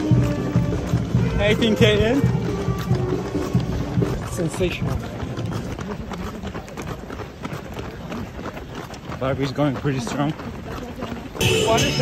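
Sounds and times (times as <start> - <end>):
running footsteps on asphalt: 0.0 - 12.0.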